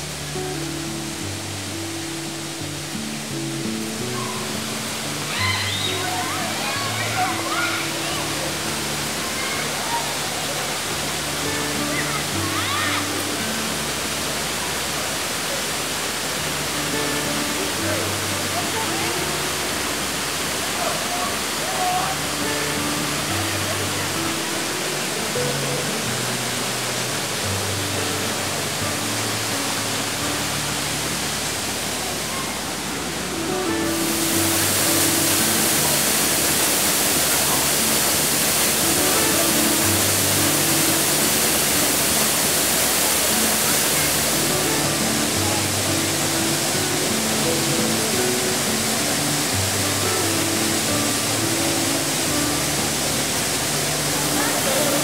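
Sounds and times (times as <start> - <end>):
slow soft background music: 0.0 - 20.8, 21.4 - 32.2, 32.8 - 55.0
small waterfall rushing: 0.0 - 55.0.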